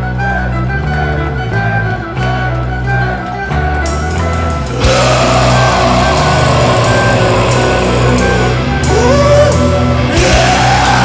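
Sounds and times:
metal band playing: 0.6s - 11.0s
long held vocal: 4.6s - 11.0s.

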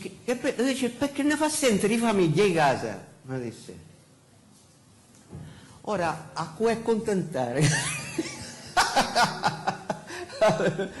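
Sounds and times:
person chuckling: 7.8s - 11.0s.

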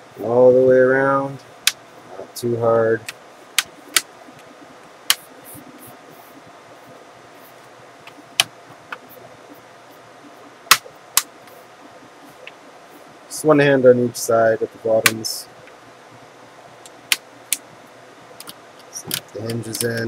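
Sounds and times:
low room hum: 0.0s - 20.0s.

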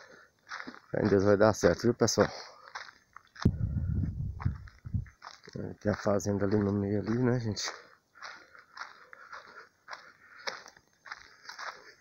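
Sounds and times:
low rumbling: 3.5s - 5.2s.

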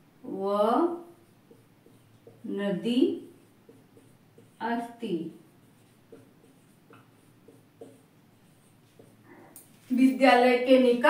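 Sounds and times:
marker pen writing on whiteboard: 0.4s - 10.1s.

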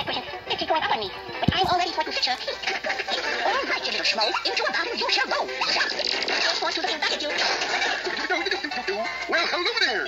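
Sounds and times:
cartoon music: 1.8s - 10.0s.

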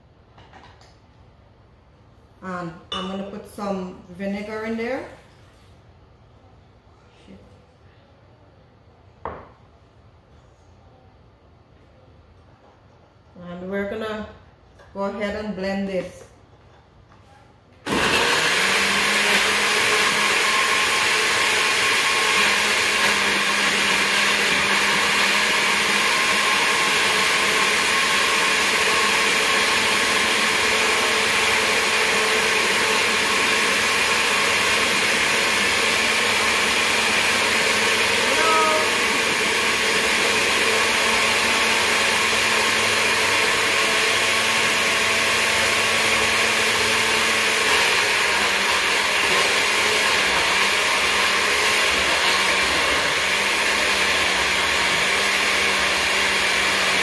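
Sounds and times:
blender running: 17.8s - 57.0s.

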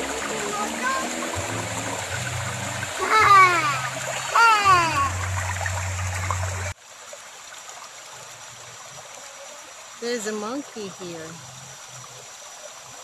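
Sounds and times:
river rushing over rocks: 0.0s - 6.8s.

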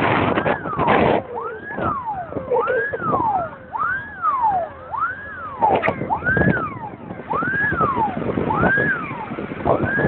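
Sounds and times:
fire engine siren wailing: 0.0s - 10.0s.

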